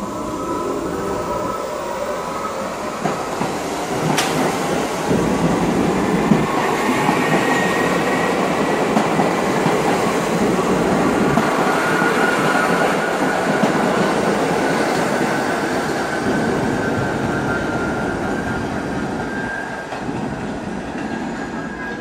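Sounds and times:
subway train wheels on rails: 0:00.0 - 0:22.0.

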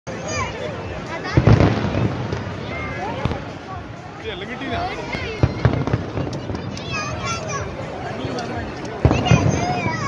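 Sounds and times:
large crowd voices: 0:00.1 - 0:10.0
fireworks bangs and crackle: 0:00.2 - 0:10.0.

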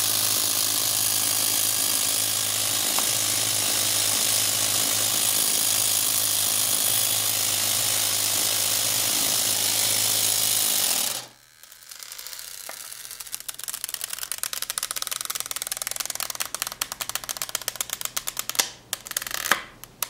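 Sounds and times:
air compressor running: 0:00.0 - 0:13.8
rapid fine clicking: 0:00.0 - 0:20.0.

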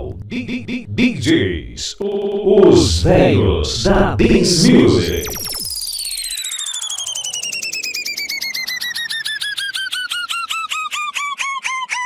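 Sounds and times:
pulsing electronic beeping tone: 0:04.3 - 0:09.5.

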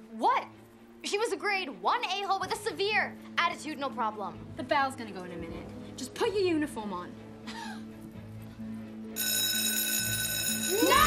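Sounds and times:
soft background music: 0:00.0 - 0:11.0
electric school bell ringing: 0:09.2 - 0:11.0.

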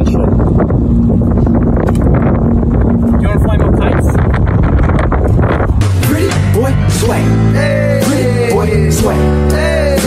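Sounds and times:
wind buffeting microphone: 0:00.0 - 0:06.3.

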